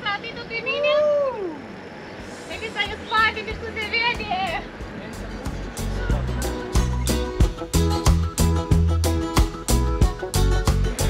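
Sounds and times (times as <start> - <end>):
people calling out: 0.1 - 1.8
background music with steady beat: 2.7 - 11.0.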